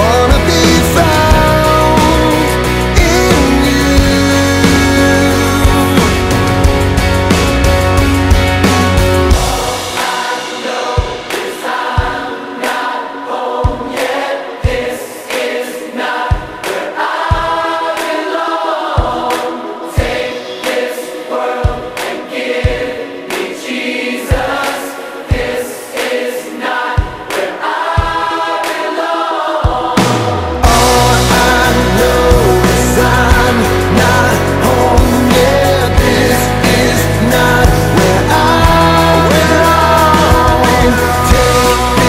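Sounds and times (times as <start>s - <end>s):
choir singing: 0.0s - 42.0s.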